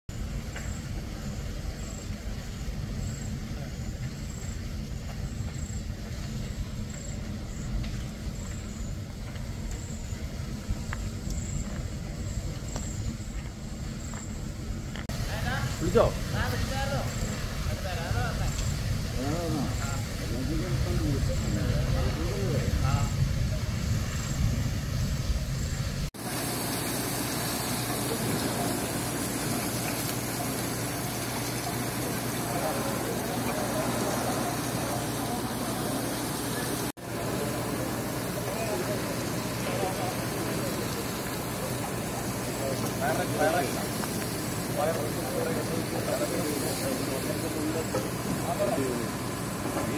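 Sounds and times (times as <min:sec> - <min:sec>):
fire rumbling: 0:00.1 - 0:49.9
steady hiss with low hum: 0:00.1 - 0:49.9.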